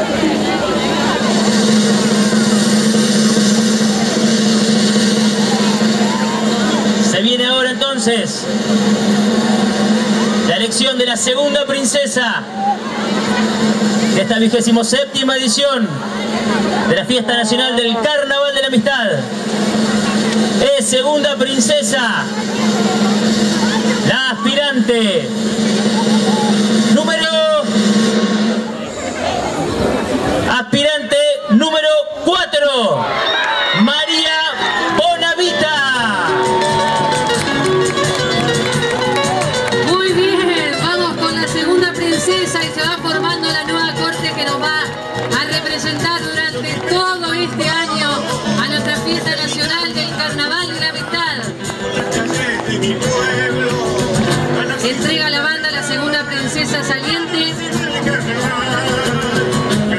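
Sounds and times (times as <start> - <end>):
steady low drone: 0.0 - 30.6, 34.5 - 55.2
music over sound system: 0.0 - 59.9
outdoor crowd noise: 0.0 - 59.9.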